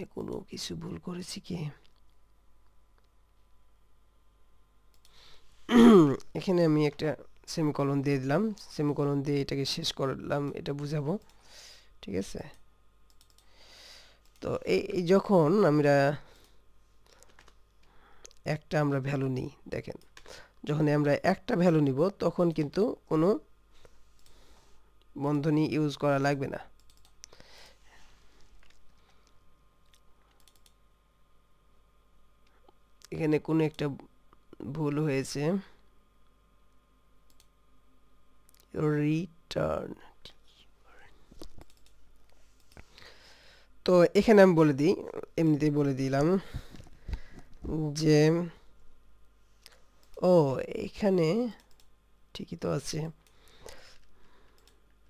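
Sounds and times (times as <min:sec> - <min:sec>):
computer clicks: 0:04.9 - 0:05.2, 0:12.4 - 0:13.5, 0:26.8 - 0:27.4, 0:29.8 - 0:30.8, 0:37.2 - 0:37.6, 0:41.4 - 0:42.0, 0:51.4 - 0:51.9, 0:54.5 - 0:54.8
soft clicks: 0:04.9 - 0:05.2, 0:12.4 - 0:13.5, 0:26.8 - 0:27.4, 0:28.6 - 0:30.8, 0:36.2 - 0:37.6, 0:41.4 - 0:42.9, 0:51.5 - 0:52.0, 0:53.2 - 0:55.0.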